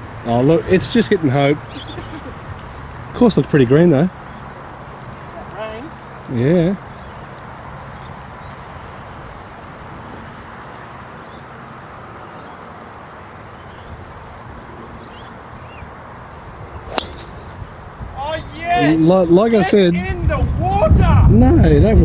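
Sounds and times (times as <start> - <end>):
faint outdoor background: 0.0 - 22.0
golf club striking ball: 16.9 - 17.8.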